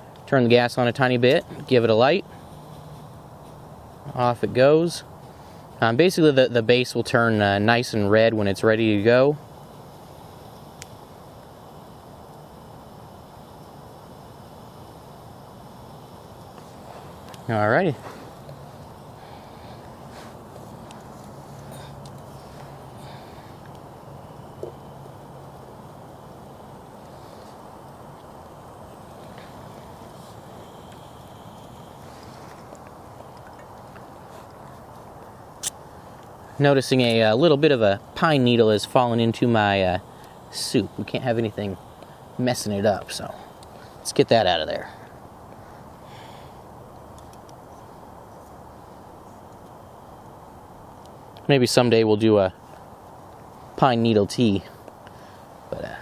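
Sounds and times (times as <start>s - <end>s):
camping stove hissing: 0.0s - 56.0s
faint ticks: 20.8s - 23.9s, 42.0s - 42.2s.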